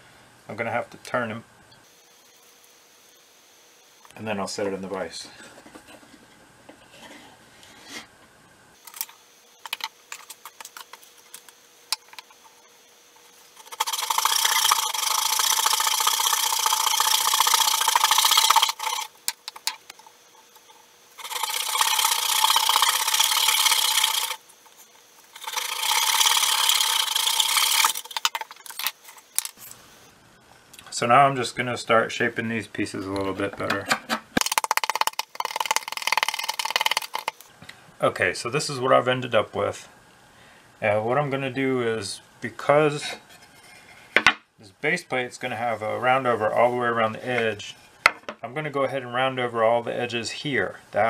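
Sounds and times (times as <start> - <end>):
saw cutting wood: 13.5 - 19.7, 21.2 - 24.4, 25.3 - 28.9.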